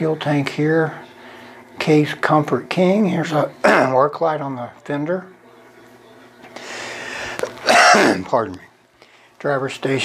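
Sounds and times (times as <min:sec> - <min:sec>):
man clearing his throat: 0:03.6 - 0:04.0, 0:07.6 - 0:08.3.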